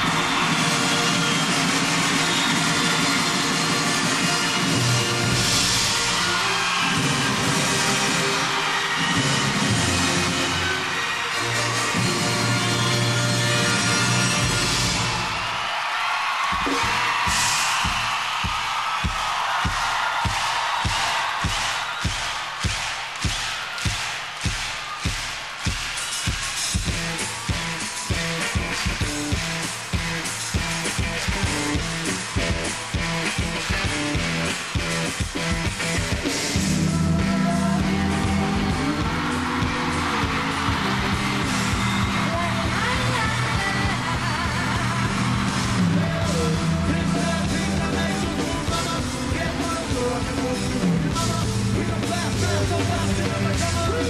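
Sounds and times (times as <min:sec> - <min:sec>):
concert crowd cheering and screaming: 0:00.0 - 0:54.0
kick drum beat: 0:16.6 - 0:34.0.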